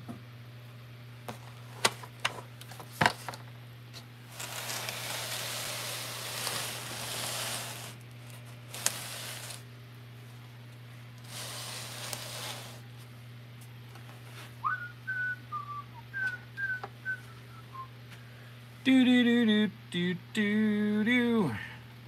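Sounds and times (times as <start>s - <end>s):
rustling hisses: 4.3s - 8.0s, 8.7s - 9.7s, 11.2s - 12.8s
person whistling a tune: 14.6s - 17.9s.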